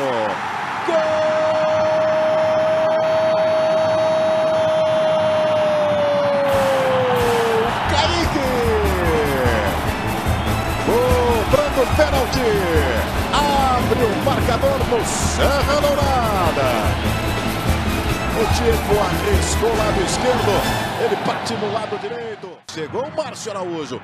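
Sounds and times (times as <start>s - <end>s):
commentator's long goal shout: 0.0s - 9.9s, 10.8s - 17.0s, 18.3s - 22.5s
music with thudding beat: 7.1s - 20.3s.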